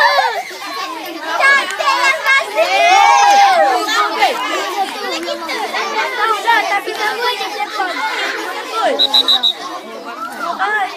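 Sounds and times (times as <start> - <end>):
children shouting and chattering: 0.0 - 10.9
short high beeps: 9.0 - 9.6.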